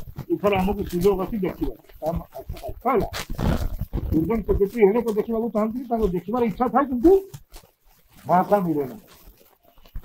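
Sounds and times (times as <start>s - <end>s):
man speaking into microphones: 0.2s - 7.4s, 8.2s - 9.2s.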